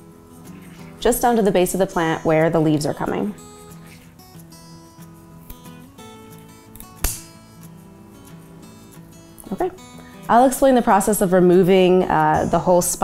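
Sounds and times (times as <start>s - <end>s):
soft acoustic guitar music: 0.0s - 13.0s
scissors snipping: 6.7s - 7.4s.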